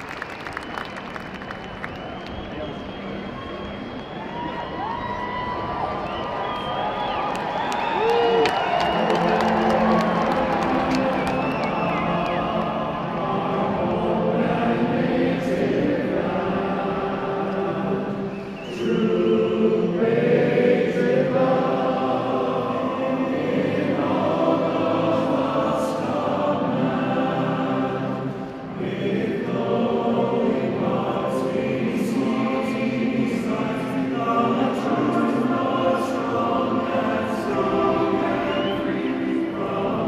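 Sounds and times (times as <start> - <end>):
many voices singing an anthem: 8.5 - 40.0.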